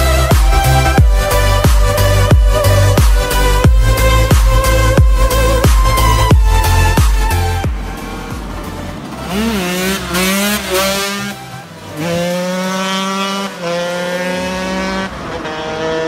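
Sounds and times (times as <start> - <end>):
two-stroke engine revving: 0.0 - 16.0.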